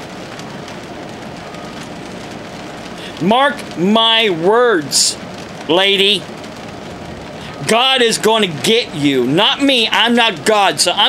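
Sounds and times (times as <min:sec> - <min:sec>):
steady hissing noise: 0:00.0 - 0:11.0.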